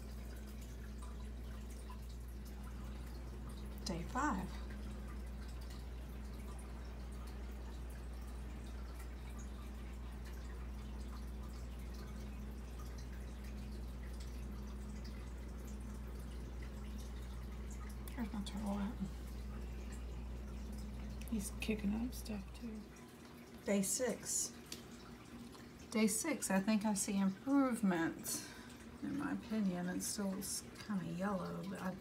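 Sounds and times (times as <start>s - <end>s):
aquarium hum: 0.0s - 32.0s.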